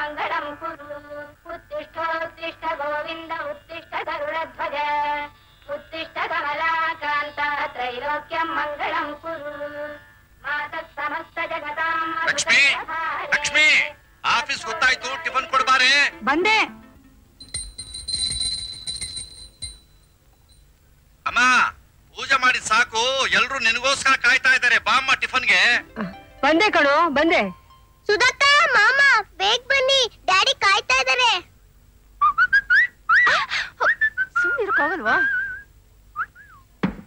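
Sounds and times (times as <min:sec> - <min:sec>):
small brass hand bell ringing: 0:17.4 - 0:20.7
person whistling gliding notes: 0:35.2 - 0:36.7
short thump: 0:36.8 - 0:37.0.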